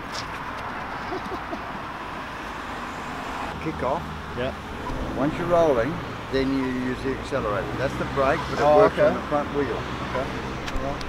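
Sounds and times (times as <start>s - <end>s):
road traffic hiss: 0.0s - 11.0s.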